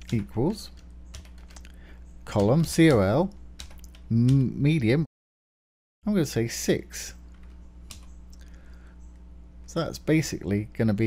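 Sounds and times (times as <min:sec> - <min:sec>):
computer keyboard keystrokes: 0:00.0 - 0:01.7, 0:02.3 - 0:04.5, 0:07.3 - 0:08.5
steady low hum: 0:00.0 - 0:05.1, 0:06.0 - 0:11.0.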